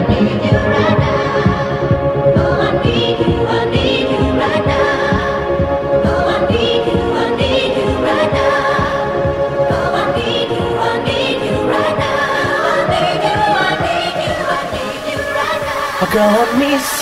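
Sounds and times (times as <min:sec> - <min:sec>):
singing over dance beat: 0:00.0 - 0:17.0.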